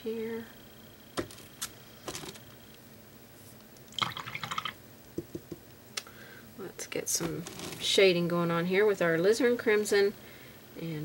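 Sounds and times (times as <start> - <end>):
rapid rattling patter: 7.1 - 8.0.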